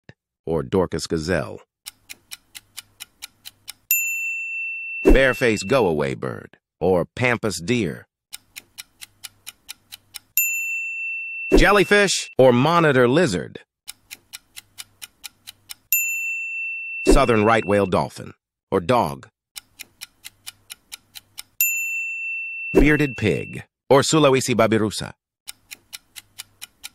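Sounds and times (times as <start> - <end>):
clock ticking: 1.8 - 3.9, 8.3 - 10.5, 13.9 - 16.0, 19.6 - 21.6, 25.5 - 26.9
bell-like ding: 3.9 - 5.8, 10.4 - 12.3, 16.0 - 18.0, 21.6 - 23.6
countdown timer ticking: 17.1 - 18.0.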